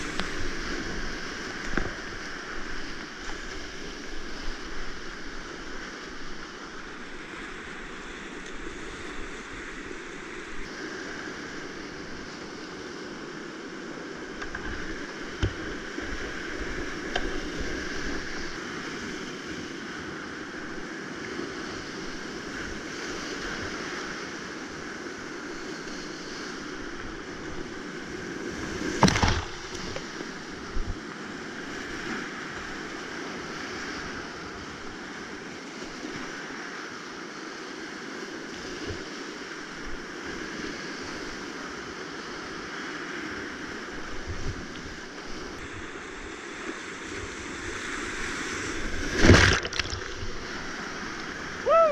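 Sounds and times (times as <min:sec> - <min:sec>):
water splashing over boat: 0:28.6 - 0:31.0, 0:48.1 - 0:51.4
whitewater rapids: 0:45.0 - 0:51.9.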